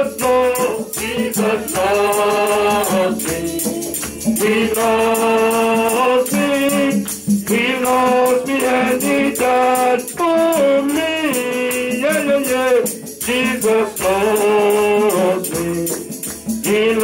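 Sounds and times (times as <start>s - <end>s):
man singing into a microphone: 0.0s - 17.0s
shaker rattling a quick beat: 0.0s - 17.0s.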